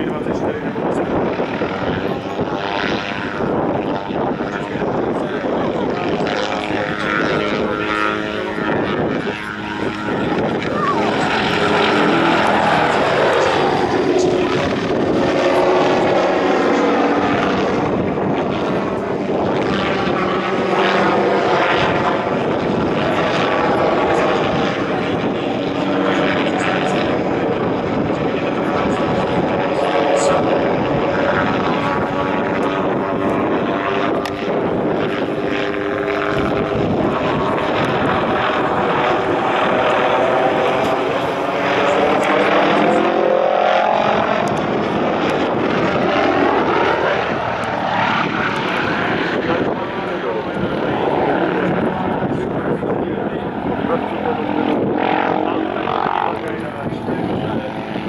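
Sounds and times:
helicopter turbine and rotor: 0:00.0 - 0:58.0.

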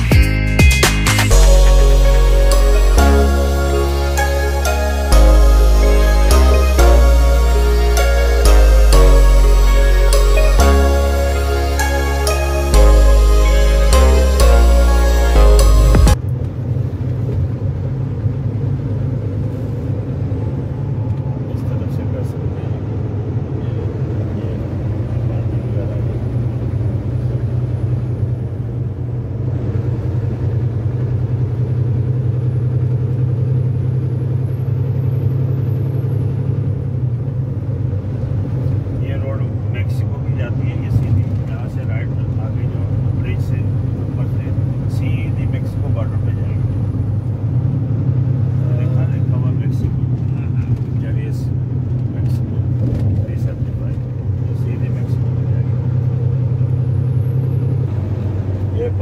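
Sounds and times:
truck engine and road noise: 0:00.0 - 0:59.0.

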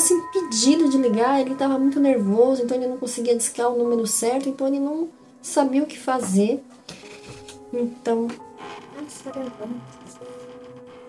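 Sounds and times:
door creaking on hinges: 0:08.4 - 0:11.0.

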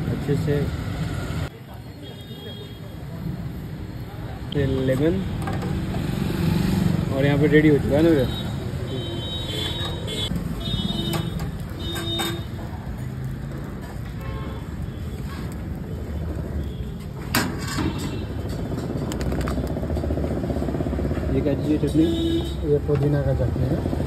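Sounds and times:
street traffic: 0:00.0 - 0:24.0.

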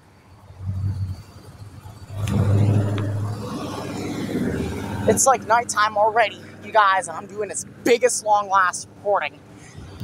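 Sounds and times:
car engine running: 0:00.3 - 0:10.0.

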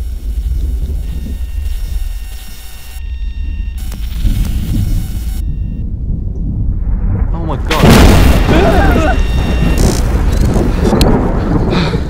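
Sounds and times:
digital static bursts: 0:00.0 - 0:05.8, 0:07.7 - 0:10.9
deep storm rumble: 0:00.0 - 0:12.0.

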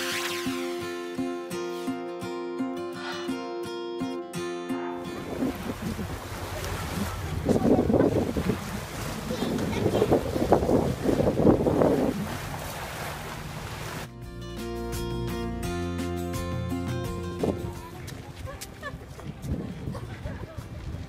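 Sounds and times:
guitar music: 0:00.0 - 0:06.4, 0:14.1 - 0:19.5
small waves on beach: 0:05.1 - 0:14.1
wind gusting across microphone: 0:05.1 - 0:14.1, 0:18.5 - 0:21.0.

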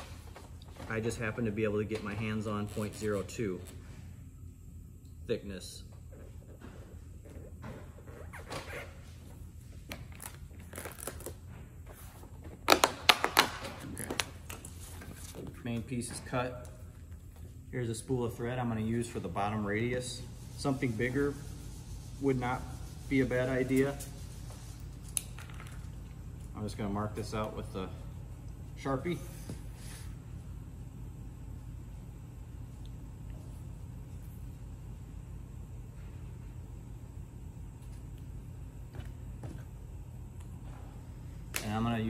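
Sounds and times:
steady low room hum: 0:00.0 - 0:42.0.

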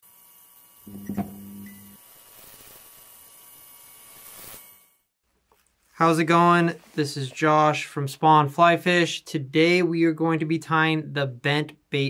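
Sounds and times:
electric hum and buzz: 0:00.8 - 0:03.1
low buzz: 0:00.9 - 0:02.0.

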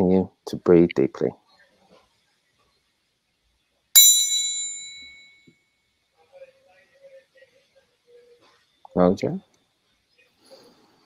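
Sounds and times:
metal triangle ringing: 0:04.0 - 0:05.4.

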